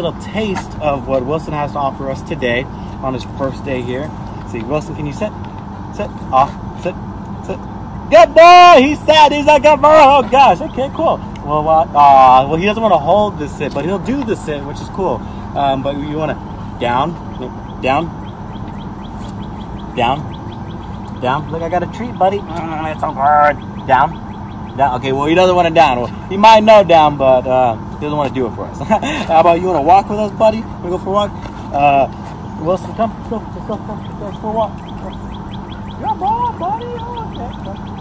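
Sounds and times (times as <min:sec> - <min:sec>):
bird chirping rapidly: 0:00.0 - 0:38.0
low outdoor rumble: 0:00.0 - 0:38.0.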